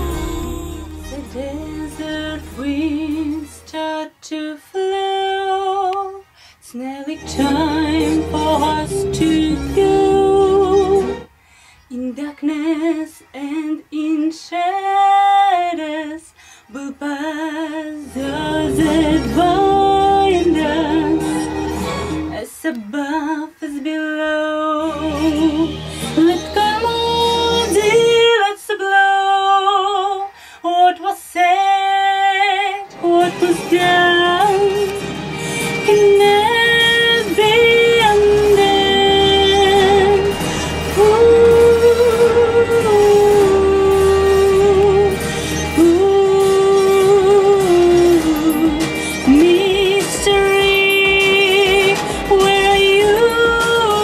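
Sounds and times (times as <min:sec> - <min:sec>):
low backing sound: 0:00.0 - 0:04.1, 0:07.2 - 0:11.3, 0:18.0 - 0:22.4, 0:32.9 - 0:49.8
woman singing melismatic runs: 0:00.0 - 0:11.3, 0:11.9 - 0:21.6, 0:22.2 - 0:54.0.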